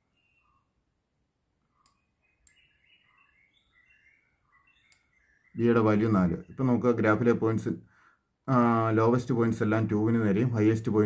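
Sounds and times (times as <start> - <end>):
birds chirping: 0.0 - 11.0
computer mouse clicks: 1.8 - 2.6, 4.8 - 5.1.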